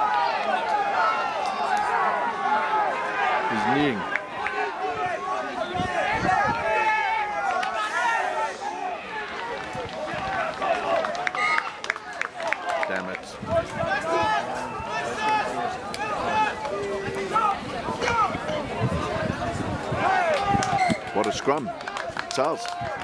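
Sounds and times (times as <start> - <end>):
voices shouting and calling: 0.0 - 23.0.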